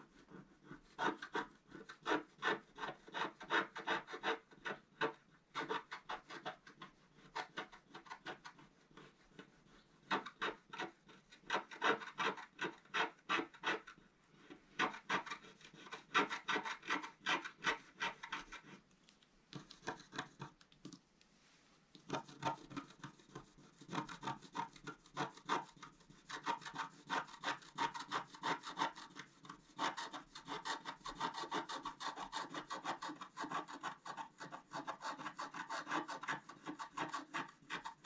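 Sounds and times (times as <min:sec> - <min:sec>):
stylus scratching card: 0:00.8 - 0:18.8, 0:19.6 - 0:20.6, 0:22.1 - 0:38.0.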